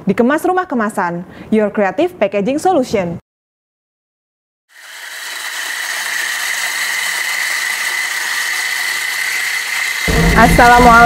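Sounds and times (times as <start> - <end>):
electric coffee grinder whining: 4.7 - 11.0.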